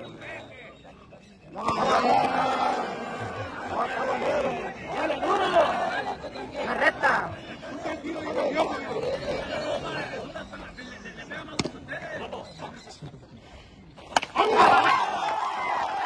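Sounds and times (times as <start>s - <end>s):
crowd shouting and chattering: 0.0s - 16.0s.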